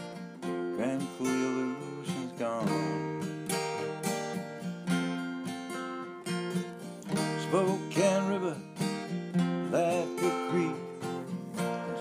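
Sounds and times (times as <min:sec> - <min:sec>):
strummed acoustic guitar: 0:00.0 - 0:12.0
person singing: 0:00.4 - 0:03.8, 0:07.1 - 0:12.0.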